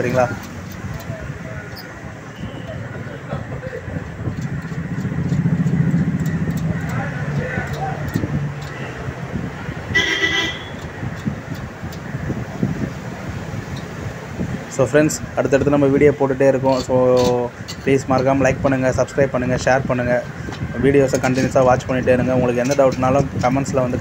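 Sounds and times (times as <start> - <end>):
vehicle engine rumble: 0.0 - 24.0
vehicle horn toot: 2.3 - 2.8, 9.9 - 10.8.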